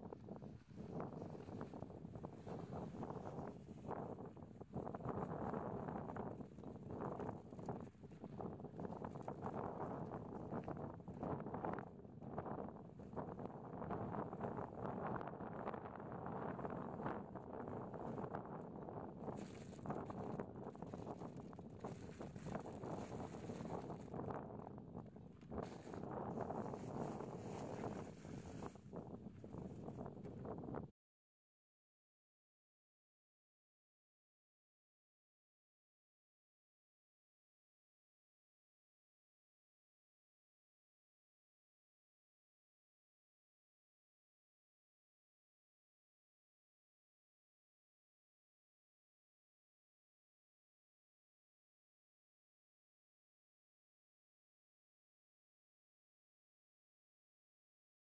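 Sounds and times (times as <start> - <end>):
wind buffeting microphone: 0.0 - 30.9.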